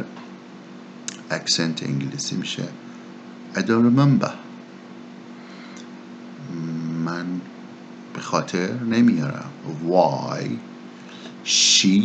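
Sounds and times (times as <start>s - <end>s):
faint background hum: 0.0s - 12.0s
man humming: 6.4s - 7.5s.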